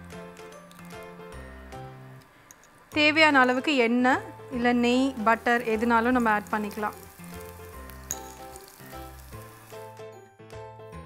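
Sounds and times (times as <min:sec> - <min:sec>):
background music with held notes: 0:00.0 - 0:11.0
flatbread sizzling in oil: 0:05.0 - 0:10.0.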